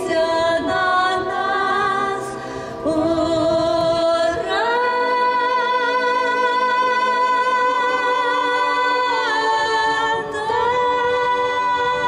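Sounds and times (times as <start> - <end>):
woman singing with vibrato: 0.0 - 12.0.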